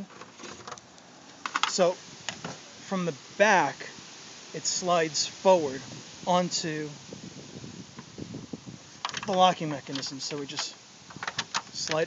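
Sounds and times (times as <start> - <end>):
wind on microphone: 2.0 - 12.0.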